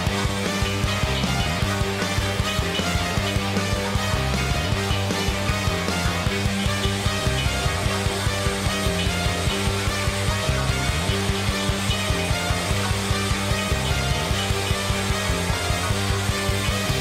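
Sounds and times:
rock band playing live: 0:00.0 - 0:17.0.

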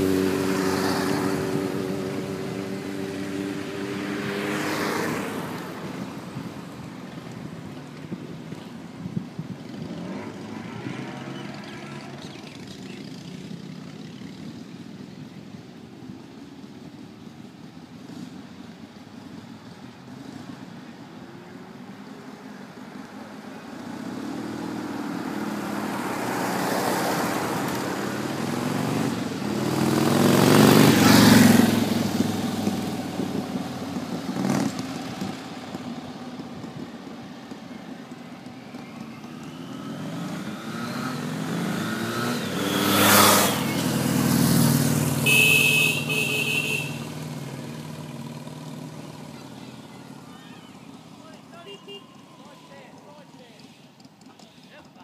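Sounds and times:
motorcycles driving past: 0:00.0 - 0:55.0.

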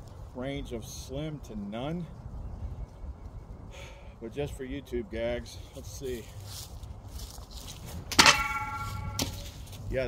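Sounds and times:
shovel striking with a clank: 0:08.1 - 0:09.6.

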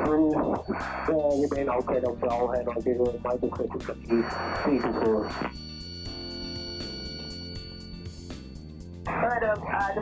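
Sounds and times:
radio voice chatter: 0:00.0 - 0:05.5
background music: 0:00.0 - 0:10.0.

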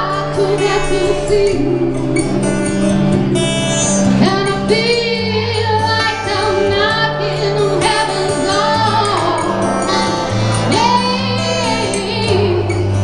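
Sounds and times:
acoustic guitar: 0:00.0 - 0:13.0
woman singing rock ballad: 0:00.0 - 0:13.0.

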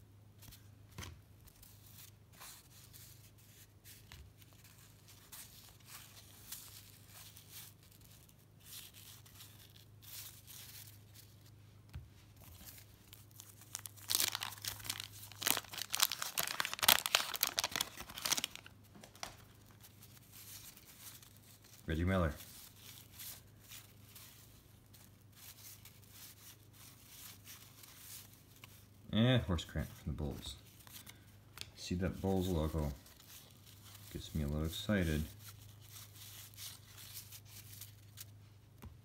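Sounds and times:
cards rustling against cards: 0:00.4 - 0:29.0, 0:29.6 - 0:38.9.

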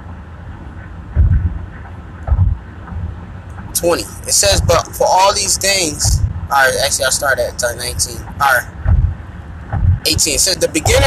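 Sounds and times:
moving vehicle rumble: 0:00.0 - 0:11.0
wind buffeting microphone: 0:00.0 - 0:11.0.

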